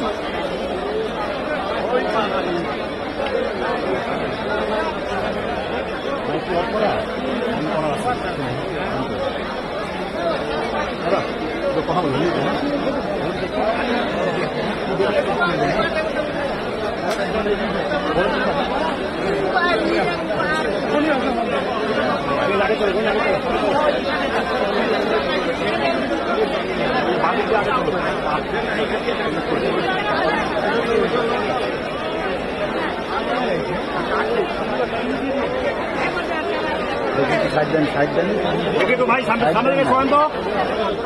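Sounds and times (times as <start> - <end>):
crowd babble: 0.0 - 41.0.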